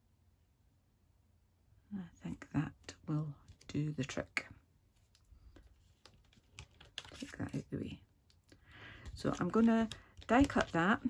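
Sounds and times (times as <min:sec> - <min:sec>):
card stock tapping: 0:05.4 - 0:07.6, 0:08.8 - 0:11.0.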